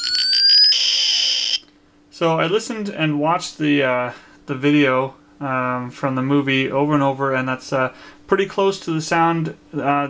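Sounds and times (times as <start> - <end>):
rising pulsing whine: 0.0 - 1.6.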